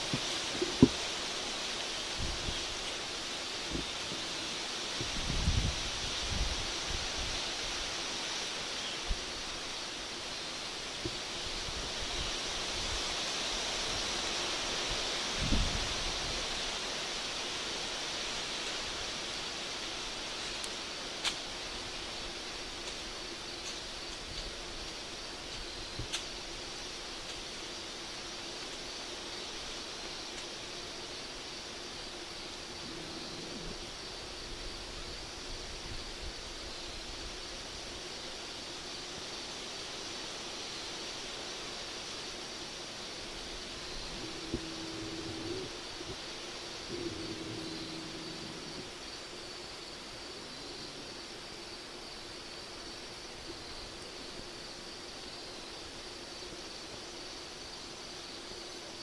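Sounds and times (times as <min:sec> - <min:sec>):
wind rustling leaves: 0:00.0 - 0:59.0
wind gusts buffeting microphone: 0:02.1 - 0:02.8, 0:05.0 - 0:07.5, 0:14.9 - 0:16.6
faint ticks: 0:20.4 - 0:21.5, 0:22.8 - 0:26.4, 0:30.0 - 0:30.6.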